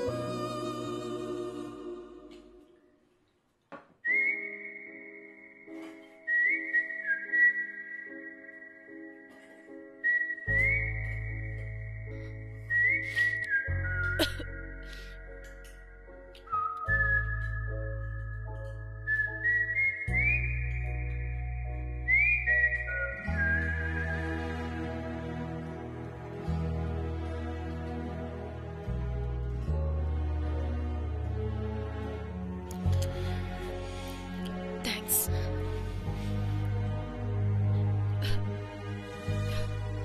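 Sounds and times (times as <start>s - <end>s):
high whistle-like melody: 4.0s - 25.1s.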